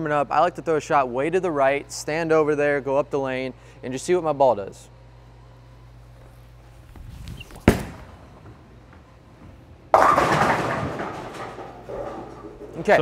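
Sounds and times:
bowling ball thudding on lane: 0:07.6 - 0:12.8
bowling pins crashing: 0:07.6 - 0:13.0.

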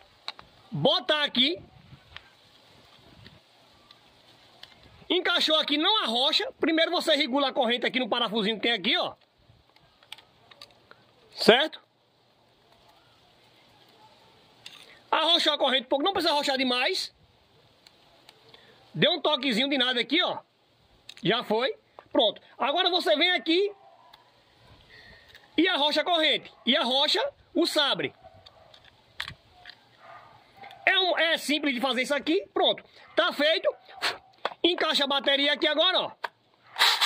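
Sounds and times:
faint background hiss: 0:00.0 - 0:37.0.

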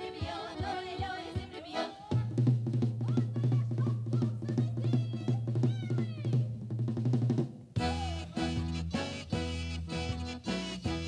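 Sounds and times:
regular drumbeat: 0:00.0 - 0:11.0.

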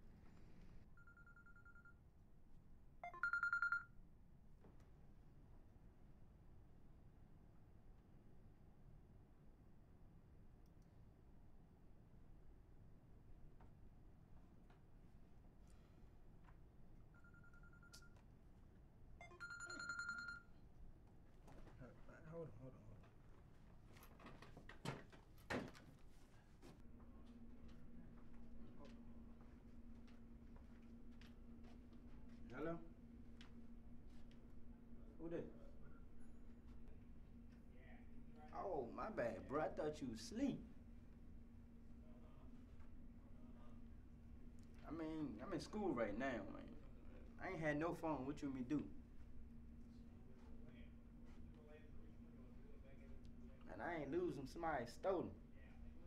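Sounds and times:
mobile phone electronic trill ringing: 0:01.0 - 0:02.0, 0:03.0 - 0:03.9, 0:17.2 - 0:18.2, 0:19.2 - 0:20.6.

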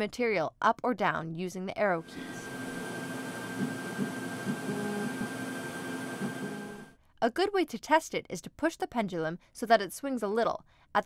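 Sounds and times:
laser cutter motor humming: 0:02.1 - 0:06.9.

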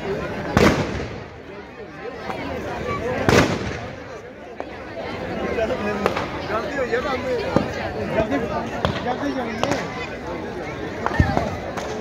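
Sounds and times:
crowd voices: 0:00.0 - 0:12.0
firecracker bang: 0:00.5 - 0:01.5, 0:03.2 - 0:04.1
firecrackers cracking: 0:00.5 - 0:01.5, 0:03.2 - 0:04.2.

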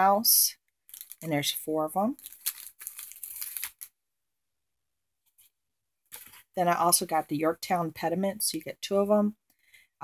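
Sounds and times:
plastic packaging crinkling: 0:00.8 - 0:01.4, 0:02.1 - 0:04.0, 0:06.1 - 0:06.5.

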